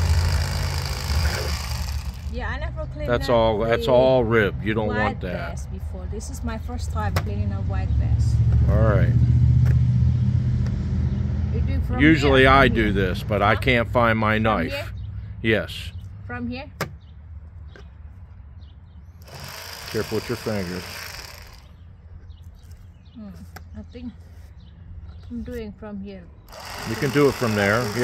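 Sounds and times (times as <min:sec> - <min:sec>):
electric knife motor buzzing: 0:00.0 - 0:02.3, 0:19.2 - 0:21.8, 0:26.5 - 0:28.0.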